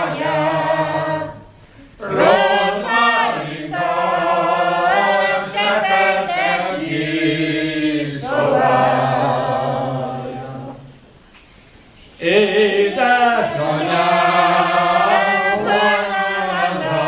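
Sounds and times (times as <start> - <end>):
group singing unaccompanied: 0.0 - 11.0, 12.1 - 17.0.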